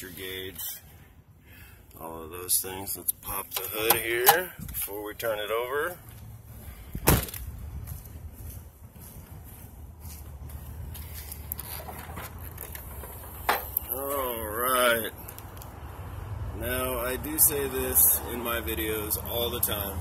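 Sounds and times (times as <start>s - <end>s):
low outdoor rumble: 0.0s - 20.0s
hood latch click: 3.5s - 4.5s
truck door shutting: 7.0s - 7.4s.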